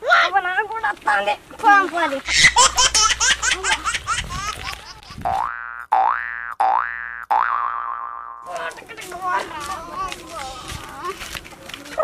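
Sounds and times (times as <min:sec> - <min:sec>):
cartoon boing sound effect: 0:05.2 - 0:08.4.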